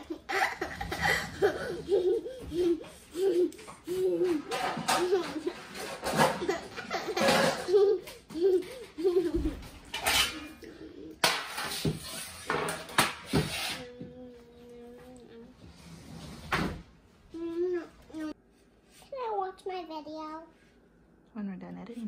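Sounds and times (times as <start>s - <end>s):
child giggling: 0.0s - 9.7s
baking sheets clattering on table: 11.2s - 13.7s.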